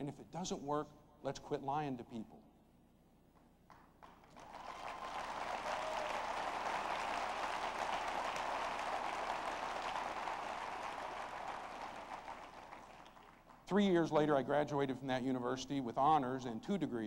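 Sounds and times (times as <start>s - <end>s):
audience applauding: 3.7s - 13.6s.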